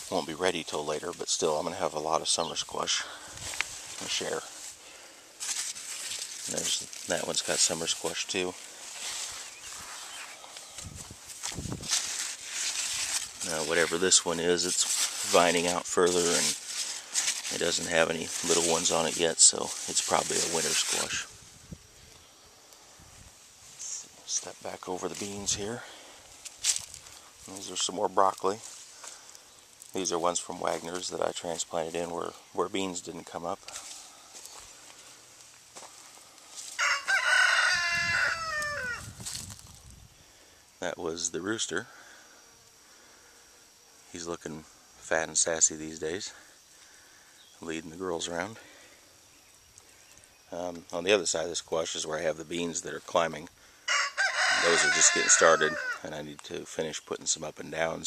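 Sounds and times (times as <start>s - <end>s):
leaves rustling by hand: 0.0s - 41.8s
rooster crowing: 36.7s - 39.1s, 53.9s - 56.0s.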